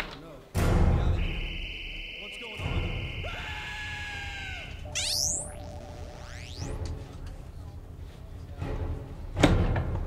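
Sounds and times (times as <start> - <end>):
long held scream: 2.9 - 4.9
high electronic buzz: 4.9 - 6.8.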